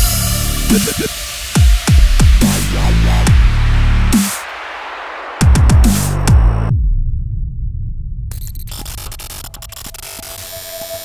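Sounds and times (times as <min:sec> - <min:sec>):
crackling static: 0:08.4 - 0:11.0.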